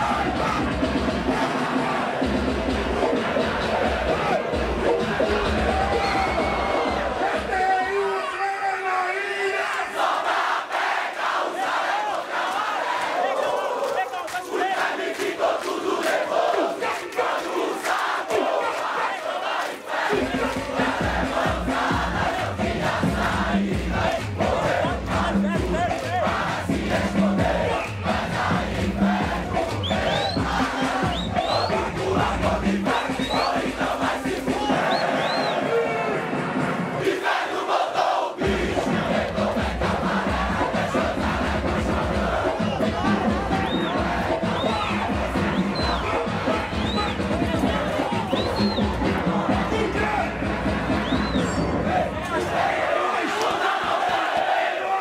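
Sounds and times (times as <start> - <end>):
crowd singing and chanting: 0.0 - 55.0
funk bass beat: 20.1 - 34.9, 38.4 - 52.0.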